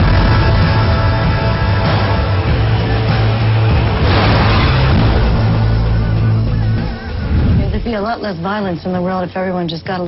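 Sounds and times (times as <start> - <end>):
car crash sound effect: 3.8 - 7.6.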